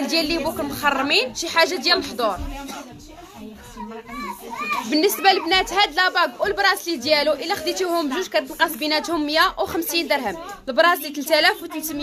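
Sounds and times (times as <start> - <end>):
child speaking: 3.7 - 5.7.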